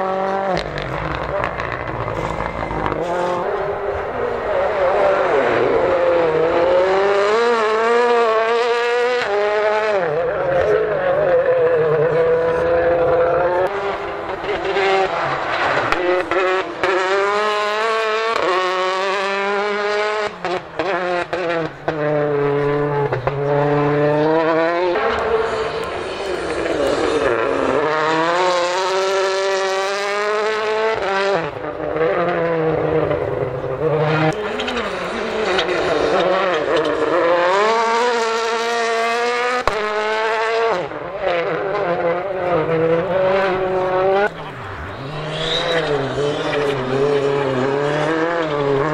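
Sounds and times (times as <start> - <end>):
rally cars revving past: 0.0 - 48.9.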